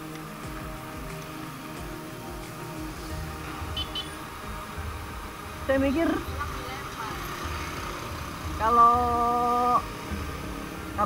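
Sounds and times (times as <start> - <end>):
motorcycle and traffic rumble: 0.0 - 11.0.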